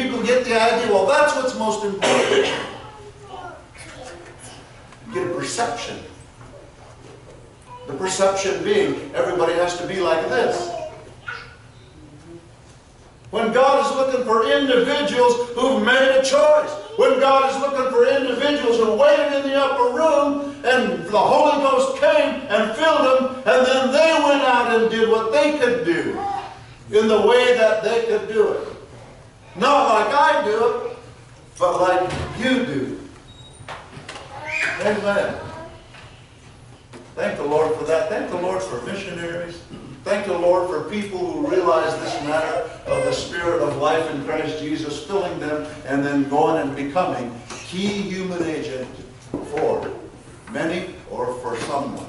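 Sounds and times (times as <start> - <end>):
man preaching: 0.0 - 2.6, 5.0 - 6.2, 7.9 - 10.9, 13.3 - 28.9, 29.6 - 33.1, 34.7 - 35.4, 37.2 - 52.0.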